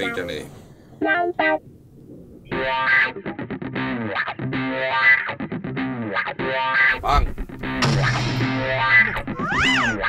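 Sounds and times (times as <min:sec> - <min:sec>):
distorted electric guitar: 0:02.5 - 0:10.0.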